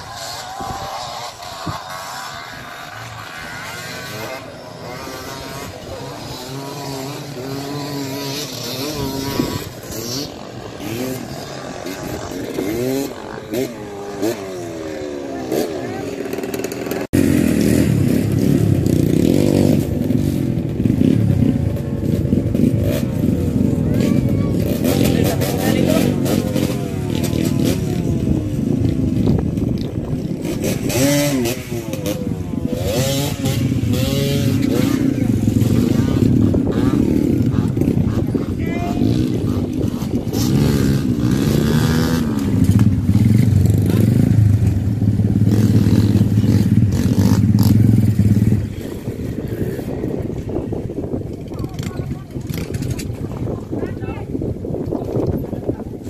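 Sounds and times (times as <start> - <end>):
dirt bike engine running close by: 0.0 - 56.0
distant dirt bike engines revving: 0.0 - 56.0.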